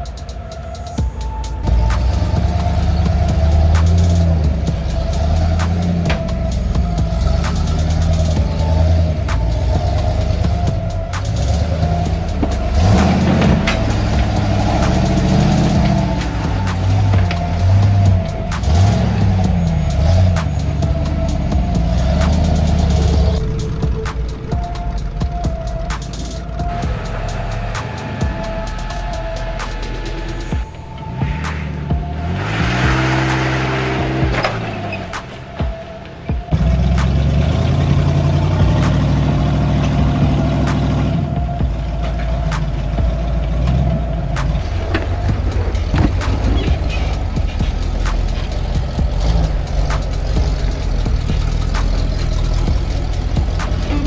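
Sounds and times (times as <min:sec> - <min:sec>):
background music: 0:00.0 - 0:54.0
truck engines revving: 0:00.0 - 0:54.0.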